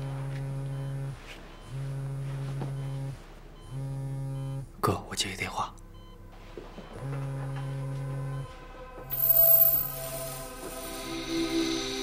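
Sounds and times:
mobile phone vibrating: 0.0 - 4.8, 6.7 - 8.6.

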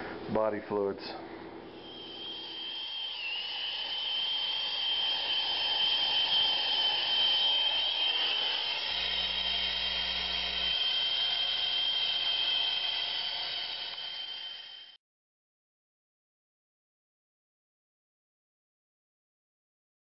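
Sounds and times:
thin high whistle: 1.7 - 15.0.

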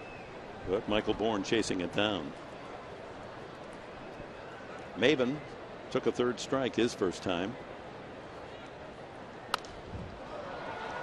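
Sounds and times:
crowd murmur: 7.5 - 11.0
baseball bat crack: 9.5 - 10.4.

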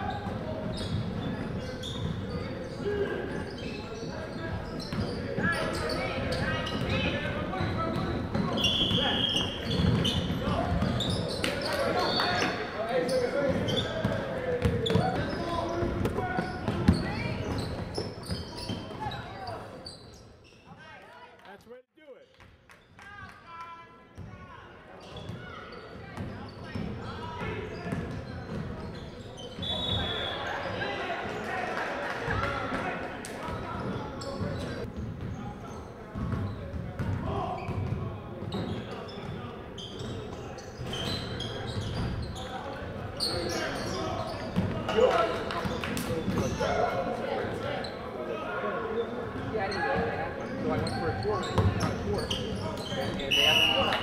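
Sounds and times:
players' voices and calls: 0.0 - 22.4, 23.0 - 54.0.

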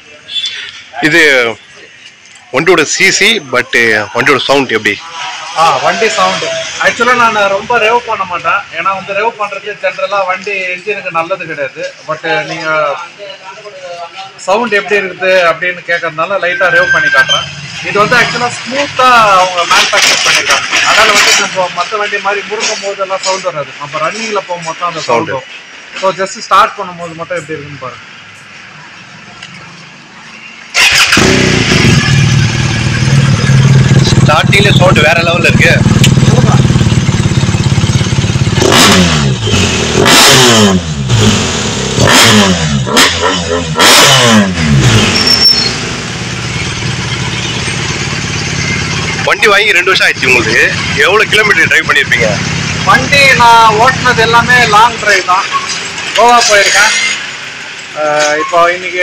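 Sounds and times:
street noise: 0.0 - 59.0
motorcycle engine starting and idling: 30.7 - 43.1
man's voice: 49.2 - 55.5.

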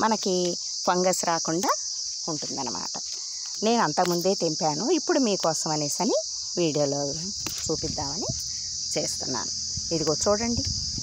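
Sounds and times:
insects singing: 0.0 - 11.0.

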